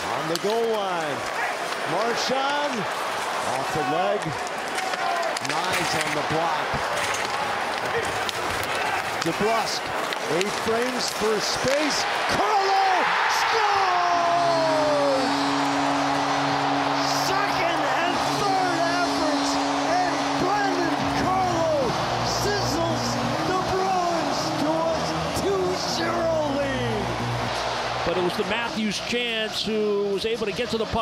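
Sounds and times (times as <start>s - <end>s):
crowd cheering with yells and whistles: 0.0s - 31.0s
goal horn blast: 13.0s - 28.0s
goal music: 13.3s - 28.0s.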